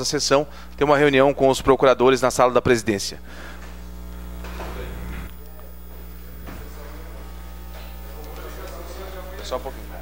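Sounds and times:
low electrical mains hum: 0.0s - 10.0s.

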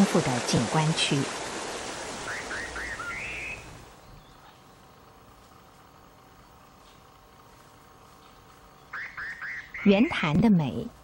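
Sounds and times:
stream rushing over rocks: 0.0s - 3.5s
bird chirping: 2.2s - 5.1s, 8.2s - 10.2s.

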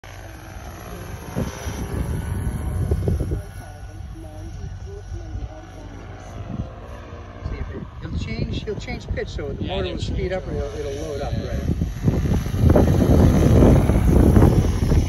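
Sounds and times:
model helicopter rotors beating: 0.0s - 15.0s.

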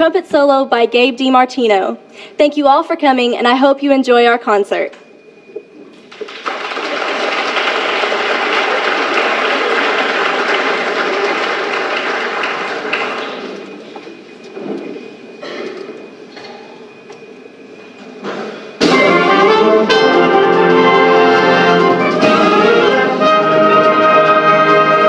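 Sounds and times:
audience applauding: 6.0s - 14.1s.

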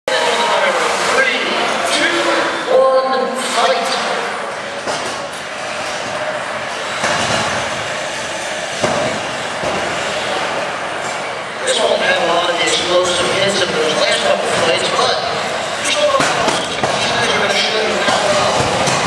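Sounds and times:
crowd chatter and shouting: 0.1s - 19.0s.

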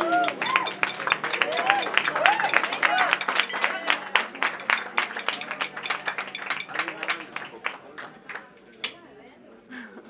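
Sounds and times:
audience applauding: 0.0s - 8.5s.

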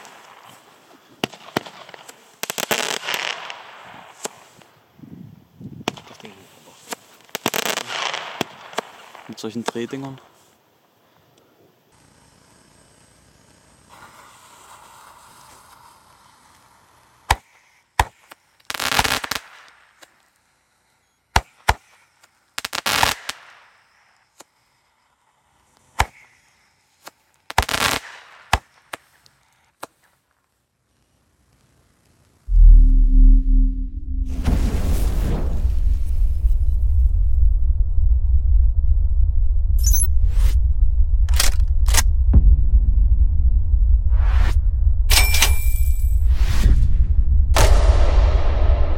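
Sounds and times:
firework shots: 0.0s - 4.8s, 5.8s - 10.0s, 17.2s - 20.2s, 21.3s - 24.5s, 25.9s - 29.2s, 47.5s - 48.9s
firework crackling bursts: 0.0s - 5.0s, 5.8s - 10.6s, 12.0s - 30.1s
swoosh sound effects: 32.5s - 37.4s
deep bass rumble: 32.5s - 48.9s.

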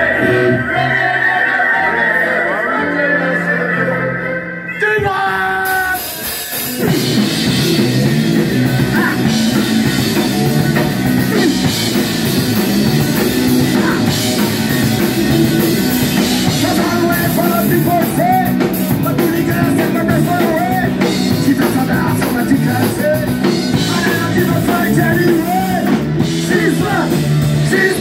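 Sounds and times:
bass guitar: 0.0s - 28.0s
drum kit: 5.0s - 28.0s
electric guitar: 5.6s - 28.0s.

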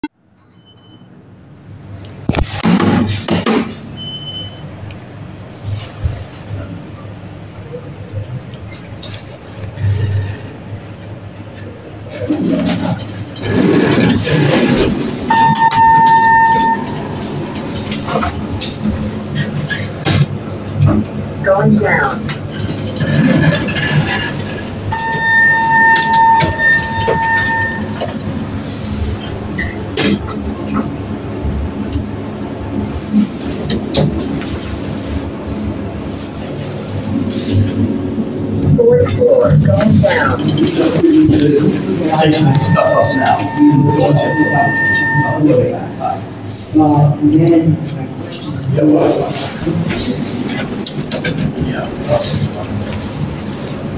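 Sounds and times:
elevator hum: 3.9s - 53.9s
steady high tone: 15.3s - 18.4s, 24.9s - 28.6s, 42.0s - 46.4s.

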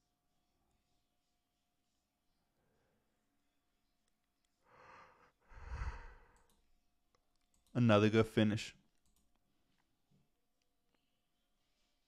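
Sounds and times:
person breathing: 4.6s - 6.6s.

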